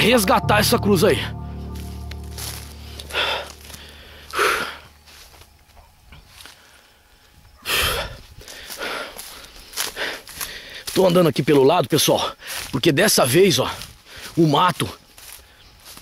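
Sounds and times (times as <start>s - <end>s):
footsteps: 1.6s - 5.5s
man breathing hard: 7.7s - 10.9s
rustling through sugarcane: 8.2s - 11.6s, 12.4s - 13.0s, 13.7s - 16.0s.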